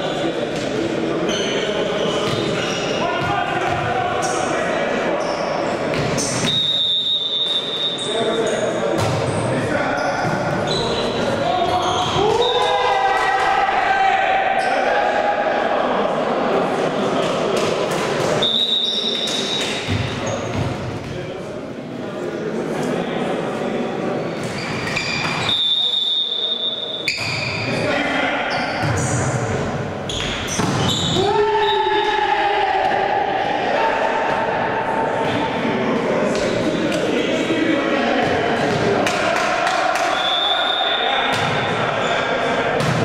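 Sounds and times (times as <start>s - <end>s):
players' voices echoing: 0.0s - 43.0s
sneakers squeaking on court: 1.3s - 3.8s, 7.4s - 12.2s, 18.8s - 21.1s, 24.4s - 25.6s, 26.7s - 27.8s, 30.0s - 31.2s
referee's whistle blast: 6.4s - 8.2s, 25.4s - 27.6s, 40.1s - 41.3s
players shouting: 10.6s - 16.9s, 30.5s - 43.0s
volleyball slaps: 42.8s - 43.0s.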